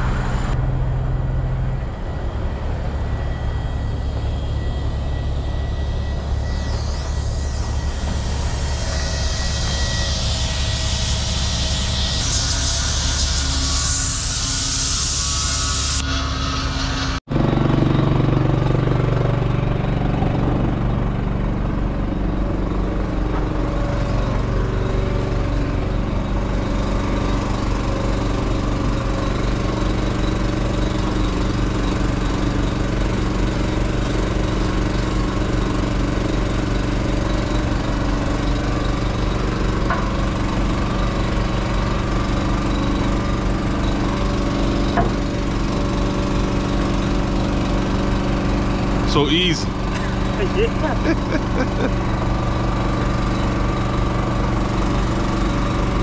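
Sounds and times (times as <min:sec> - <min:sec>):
engine idling: 0:17.3 - 0:56.0.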